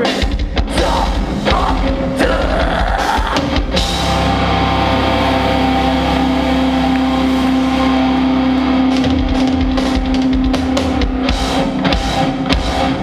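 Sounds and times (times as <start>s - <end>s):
distorted guitars and bass chord: 0.0s - 13.0s.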